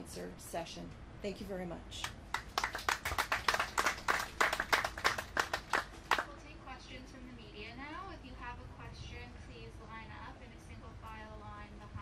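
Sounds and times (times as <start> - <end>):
small group applauding: 2.0 - 6.3.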